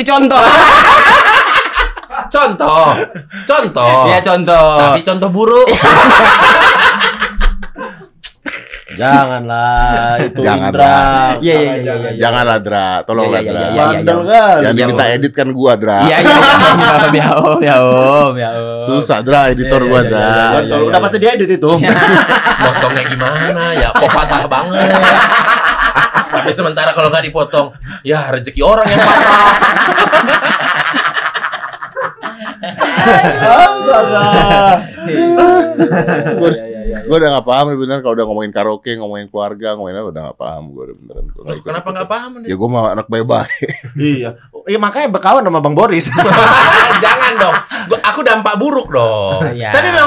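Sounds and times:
men laughing: 0.3s - 4.2s, 5.7s - 12.0s, 16.0s - 18.3s, 21.7s - 27.0s, 28.6s - 37.1s, 41.4s - 42.2s, 43.4s - 44.3s, 46.0s - 50.0s.

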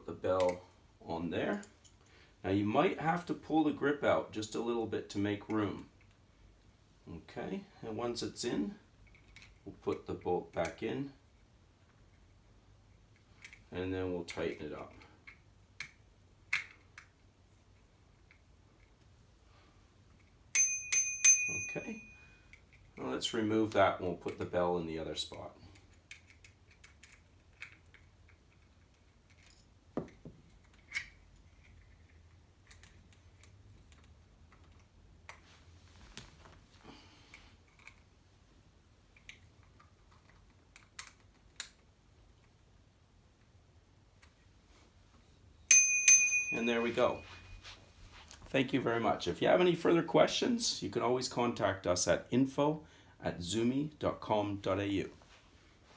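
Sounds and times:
small metal clicks and taps: 25.7s - 35.4s, 39.2s - 41.8s.

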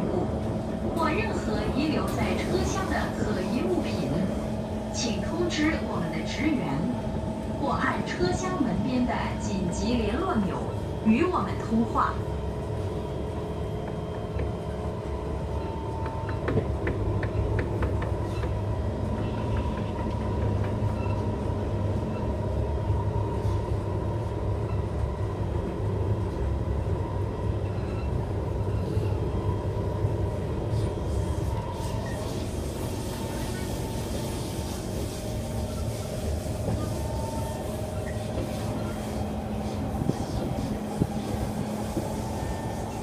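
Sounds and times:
train wheels rumbling on track: 0.0s - 43.0s.

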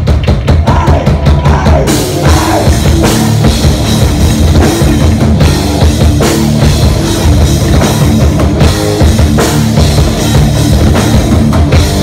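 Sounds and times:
rapid drum hits: 0.0s - 12.0s
thrash metal band playing: 0.0s - 12.0s.

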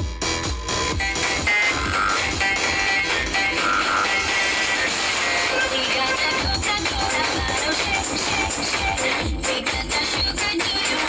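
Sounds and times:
heavy bass drum beat: 0.0s - 11.0s
loud electronic dance music: 0.0s - 11.0s.

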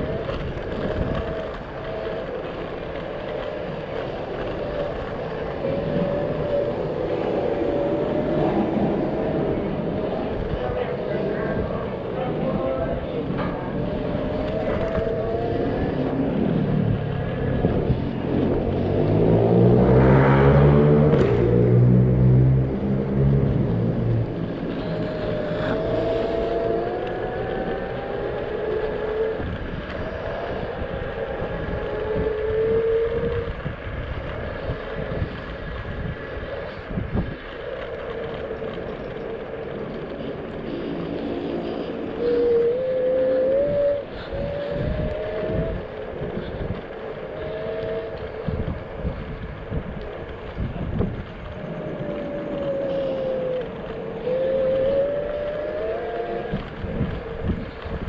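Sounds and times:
deep droning: 0.0s - 58.0s
road and wind noise: 0.0s - 58.0s.

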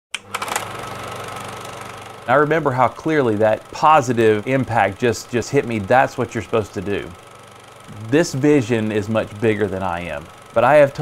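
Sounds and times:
fast mechanical whirring hum: 0.2s - 11.0s.

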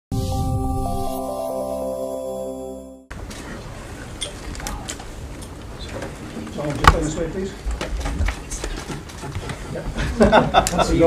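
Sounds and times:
low room murmur: 3.1s - 11.0s.

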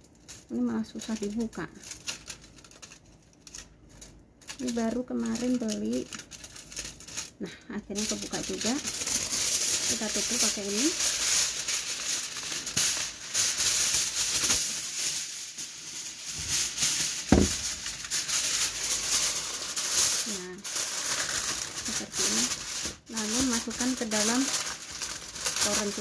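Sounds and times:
aluminium foil crinkling: 0.0s - 26.0s
thump: 17.3s - 17.7s.

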